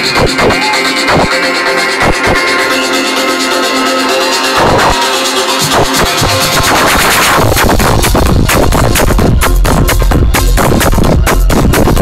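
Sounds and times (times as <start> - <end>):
bass and kick drum: 0.0 - 1.4, 5.6 - 12.0
sustained synth chords: 0.0 - 10.6.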